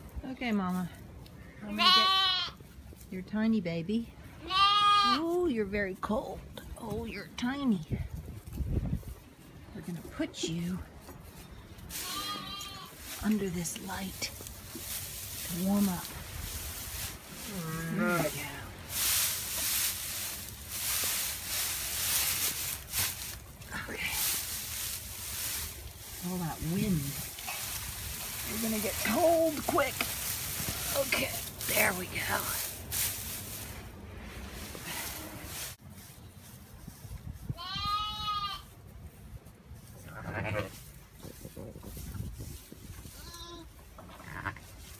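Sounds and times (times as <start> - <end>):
sheep bleating: 1.7 - 2.6, 4.4 - 5.2, 12.0 - 12.9, 37.6 - 38.7, 40.1 - 40.7
straw rustling: 5.0 - 37.8
wind rumble on microphone: 7.0 - 10.2, 36.8 - 38.5, 40.4 - 43.6.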